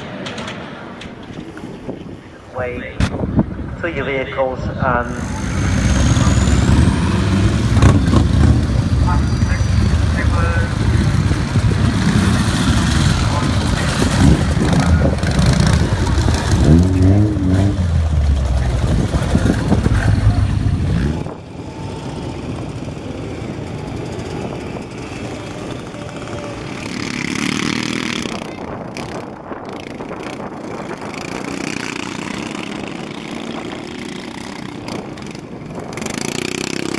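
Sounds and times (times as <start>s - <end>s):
distant motorcycle engines: 0.0s - 36.9s
motorcycle engines passing: 0.0s - 36.9s
voices: 2.2s - 22.0s.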